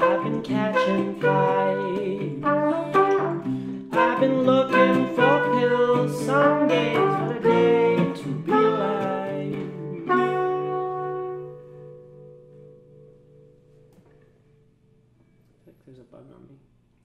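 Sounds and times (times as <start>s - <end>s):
trumpet: 0.0s - 12.5s
acoustic guitar: 0.0s - 15.5s.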